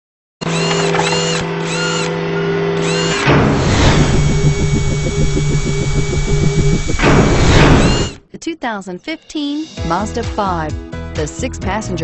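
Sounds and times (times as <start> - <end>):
drill-like whirring effects: 0.4 - 2.2, 2.8 - 8.2
pulsing beat: 3.4 - 8.2
electronic music: 3.6 - 8.2.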